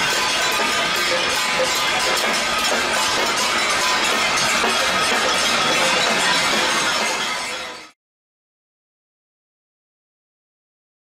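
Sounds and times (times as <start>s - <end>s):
crowd banging pots and pans: 0.0s - 8.0s.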